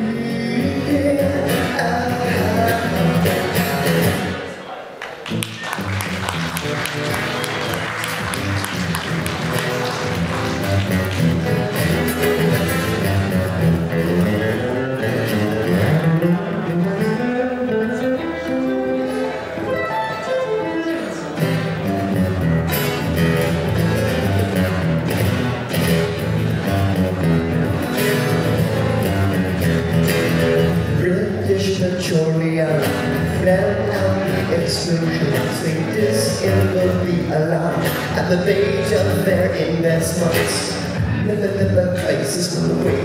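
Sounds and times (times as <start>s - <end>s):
solo acoustic guitar: 0.0s - 4.6s, 5.4s - 43.0s.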